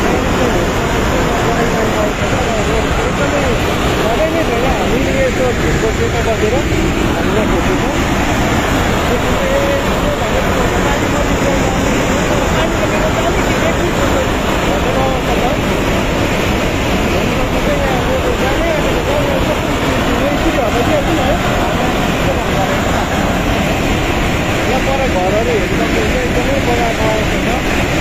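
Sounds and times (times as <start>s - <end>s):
faint voices: 0.0s - 28.0s
floodwater rushing: 0.0s - 28.0s.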